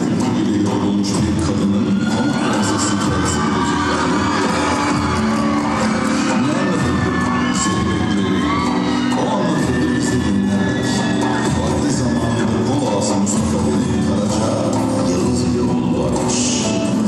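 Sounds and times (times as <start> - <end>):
folk dance music: 0.0 - 17.0
percussion beat: 0.0 - 17.0
crowd cheering and whooping: 1.1 - 16.9.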